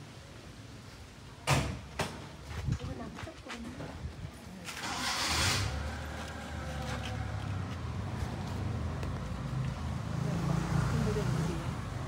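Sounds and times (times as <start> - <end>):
rustle of leaves: 2.4 - 12.0.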